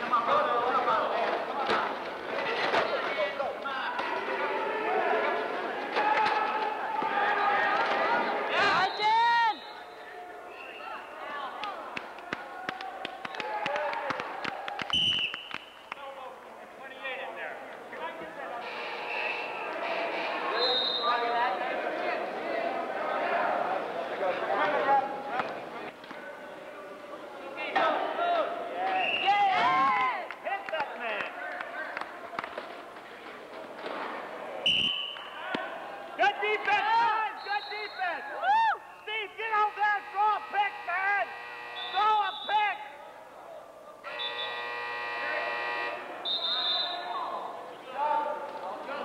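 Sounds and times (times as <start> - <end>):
people calling and shouting: 0.0 - 49.0
electronic buzzer: 18.6 - 20.6, 39.7 - 42.3, 44.1 - 46.4.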